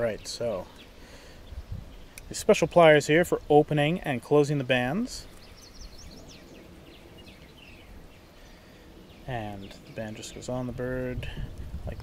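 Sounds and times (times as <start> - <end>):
low background noise: 0.0 - 12.0
faint bird chirps: 5.1 - 10.7.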